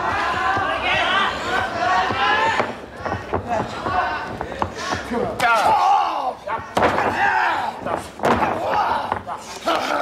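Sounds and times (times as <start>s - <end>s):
bodies hitting wrestling ring: 6.6s - 9.4s.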